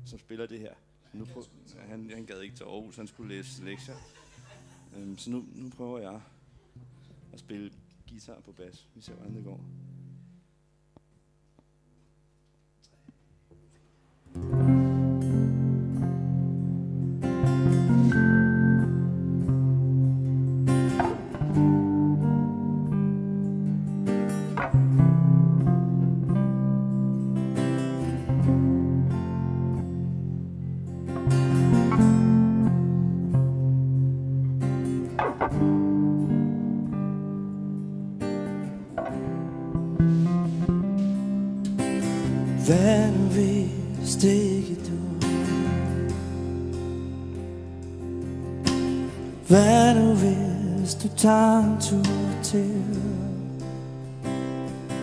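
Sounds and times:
electric bass playing: 14.3s - 55.0s
strummed acoustic guitar: 14.3s - 55.0s.

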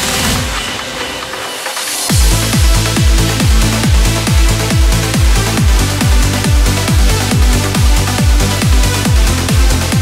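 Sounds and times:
rolling trance bassline: 0.0s - 10.0s.

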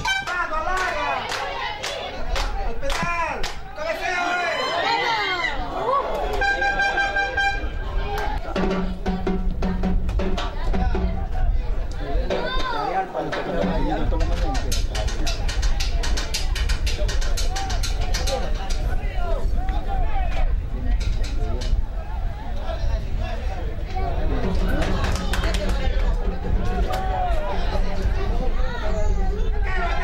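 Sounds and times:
horn blowing held note: 0.0s - 0.3s, 6.4s - 7.9s
crowd voices shouting: 0.0s - 9.3s, 10.4s - 30.0s
rapid percussion: 8.3s - 19.5s, 23.6s - 28.7s.

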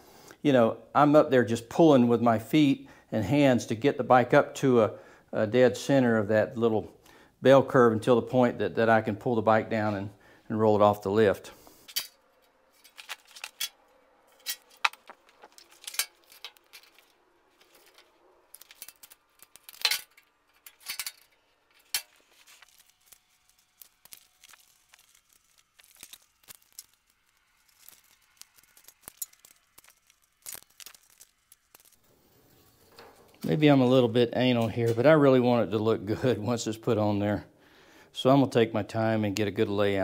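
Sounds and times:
tape crinkling: 12.3s - 33.5s.

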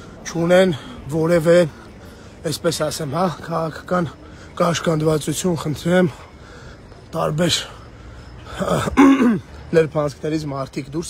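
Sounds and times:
man clearing throat: 8.8s - 9.5s.

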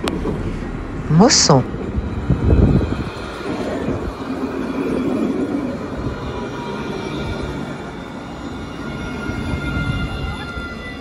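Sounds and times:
tram rolling past: 0.0s - 11.0s.

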